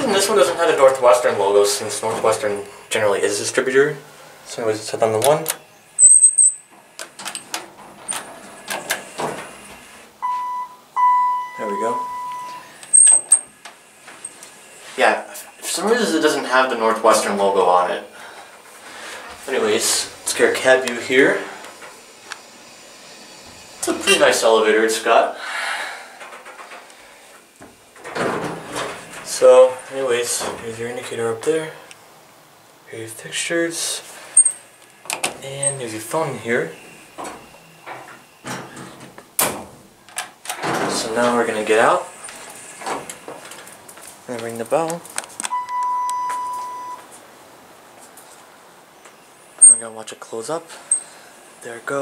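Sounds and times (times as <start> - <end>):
doors sliding: 5.0 - 10.4, 25.9 - 31.6, 34.1 - 47.0.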